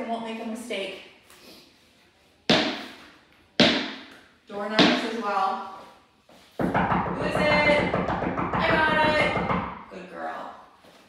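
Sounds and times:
tennis ball bouncing on wooden floor: 2.5s - 3.0s, 3.6s - 5.2s, 6.6s - 9.8s.

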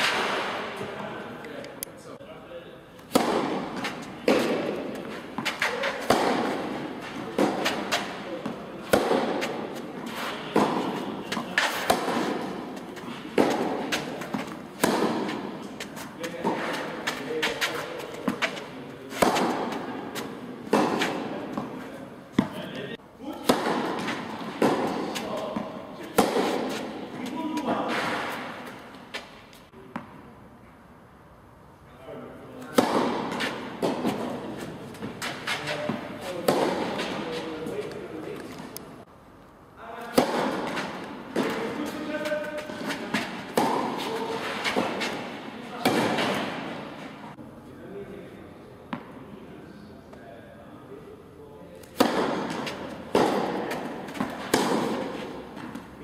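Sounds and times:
rackets hitting tennis ball: 0.0s - 1.8s, 3.0s - 30.4s, 32.5s - 39.0s, 39.9s - 47.4s, 51.8s - 56.0s
tennis ball bouncing: 3.0s - 30.3s, 32.6s - 38.8s, 40.0s - 47.4s, 48.9s - 49.2s, 51.8s - 56.0s.

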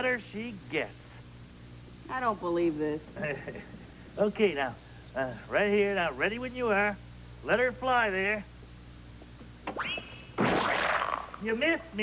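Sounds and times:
high whistle sliding up: 9.7s - 10.9s
pie splat crash: 10.4s - 11.4s.

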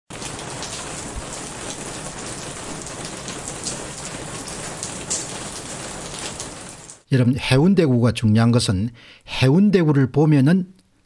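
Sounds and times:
rain hissing: 0.1s - 7.1s.

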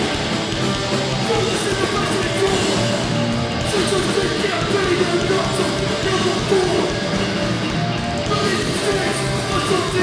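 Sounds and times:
punk band playing live: 0.0s - 10.0s.

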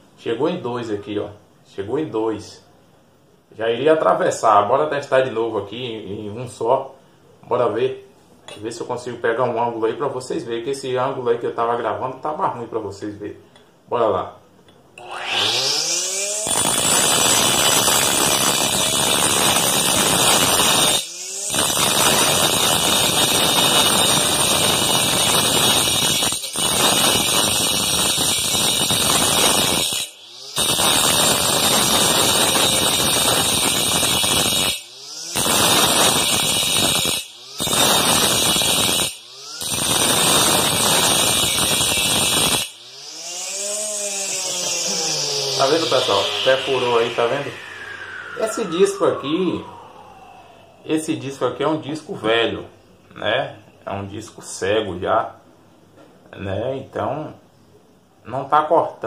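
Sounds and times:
disc grinding into aluminium tube: 15.0s - 48.5s
saw motor spinning: 15.0s - 51.4s.

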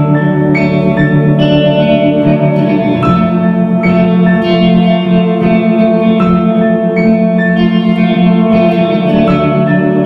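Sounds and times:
electric guitar strumming chords: 0.0s - 10.0s
keyboard chords: 0.0s - 10.0s.

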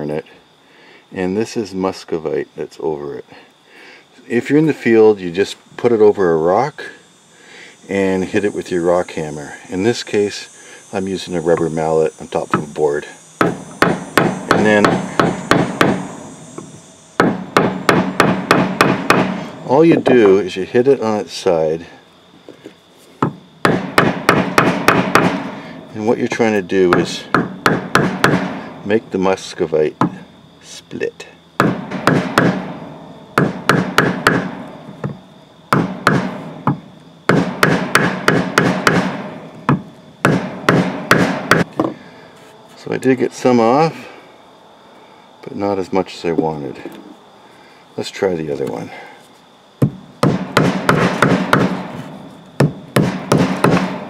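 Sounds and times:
rubber mallet striking stone on wood: 13.4s - 19.4s, 23.2s - 25.5s, 27.0s - 28.6s, 31.6s - 32.7s, 33.4s - 42.0s, 49.8s - 52.0s, 52.6s - 54.0s
rubber mallet striking rock: 31.6s - 32.7s, 33.4s - 42.0s, 52.6s - 54.0s.

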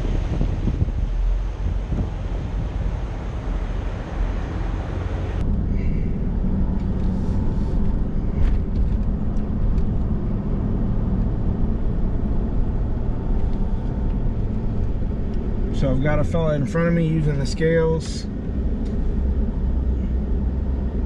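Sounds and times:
truck engine and road noise: 0.0s - 21.0s.

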